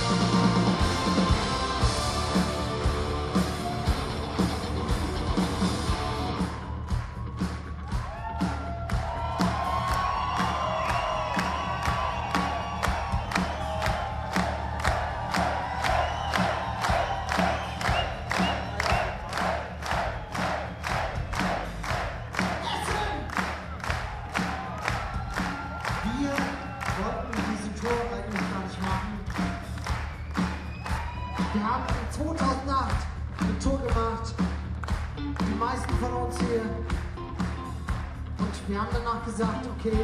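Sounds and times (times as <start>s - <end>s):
crowd cheering and singing along: 0.0s - 40.0s
steady drum beat: 0.0s - 40.0s.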